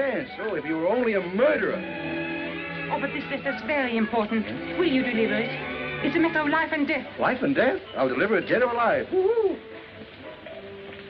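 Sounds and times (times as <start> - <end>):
faint held background music: 0.0 - 11.0.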